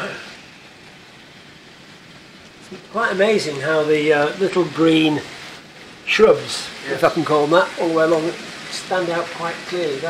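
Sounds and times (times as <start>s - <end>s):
model train wheels and motor hissing: 0.0s - 10.0s.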